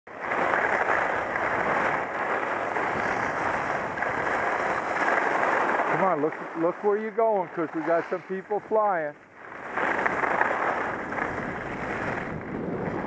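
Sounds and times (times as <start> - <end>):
skis scraping on packed snow: 0.1 - 13.0
wind rushing over helmet: 1.0 - 13.0.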